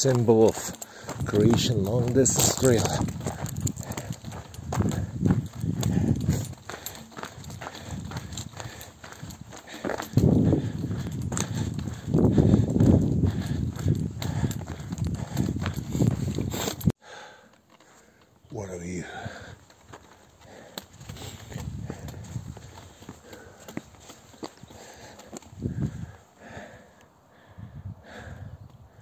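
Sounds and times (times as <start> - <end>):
footsteps on gravel: 0.0 - 16.9, 17.8 - 26.2.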